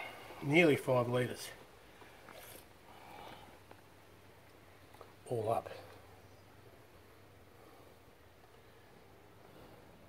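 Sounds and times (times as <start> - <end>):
oil trickling into a funnel: 1.8 - 5.2.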